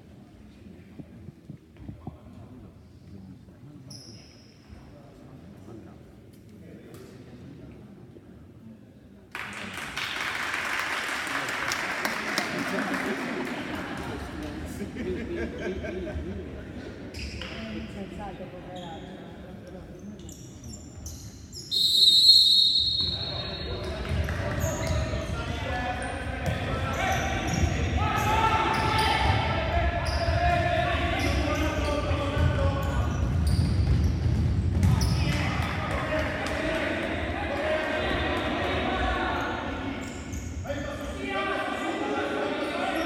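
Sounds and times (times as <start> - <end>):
referee's whistle blast: 21.7 - 23.6
players shouting: 24.6 - 32.6
ball bouncing on hardwood court: 32.3 - 36.1.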